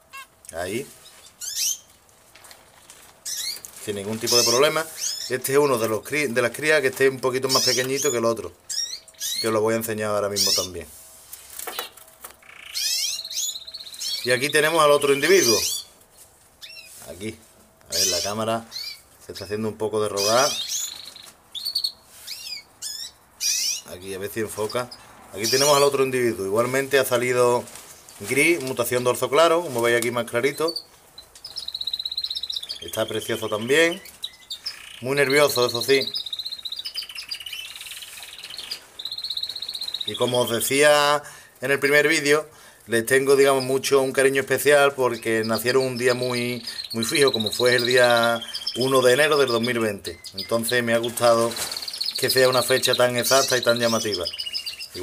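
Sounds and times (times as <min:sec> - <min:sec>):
bird calling: 0:00.0 - 0:01.9, 0:03.2 - 0:05.8, 0:07.0 - 0:09.6, 0:10.3 - 0:10.8, 0:11.7 - 0:16.0, 0:17.9 - 0:26.5, 0:28.0 - 0:42.3, 0:43.2 - 0:55.0
finches chirping: 0:01.0 - 0:01.9, 0:03.2 - 0:09.6, 0:10.2 - 0:10.8, 0:11.7 - 0:16.0, 0:16.6 - 0:17.0, 0:17.9 - 0:26.3, 0:30.3 - 0:41.1, 0:43.2 - 0:55.0
lower chirping: 0:11.8 - 0:16.0, 0:20.1 - 0:23.9, 0:30.4 - 0:41.1, 0:43.4 - 0:55.0.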